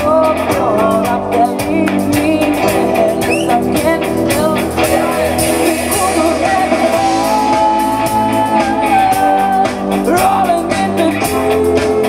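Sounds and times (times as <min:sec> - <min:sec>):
bass guitar: 0:00.0 - 0:12.0
drum kit: 0:00.0 - 0:12.0
electric guitar: 0:00.0 - 0:12.0
keyboard: 0:00.0 - 0:12.0
woman singing: 0:00.0 - 0:12.0.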